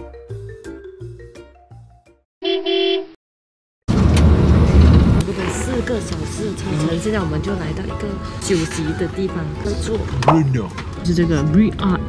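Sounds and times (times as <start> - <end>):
mallet music: 0.0 - 2.0
coach road noise: 3.9 - 12.0.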